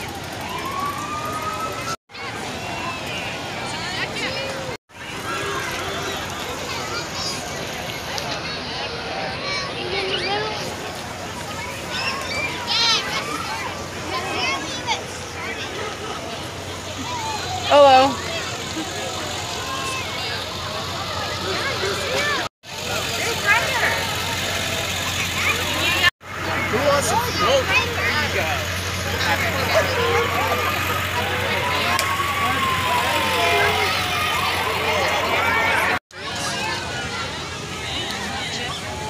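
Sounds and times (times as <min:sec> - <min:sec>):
crowd chatter and shouts: 0:00.0 - 0:39.0
vehicles rolling past: 0:00.0 - 0:39.0.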